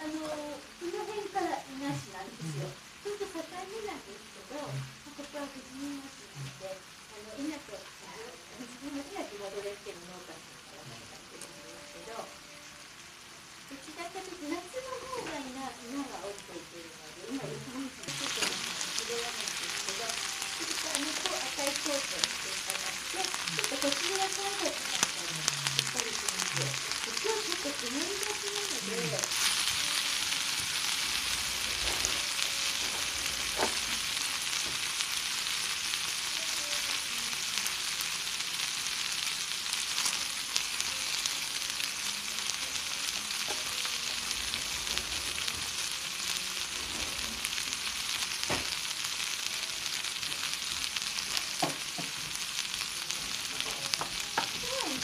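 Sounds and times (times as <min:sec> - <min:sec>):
steak sizzling in skillet: 0:00.0 - 0:55.0.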